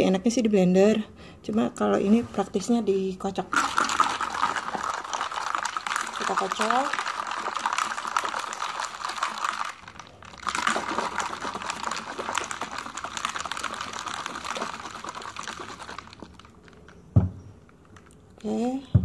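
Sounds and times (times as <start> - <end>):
ice rattling in shaker bottle: 3.5 - 17.1
thump: 17.2 - 17.4.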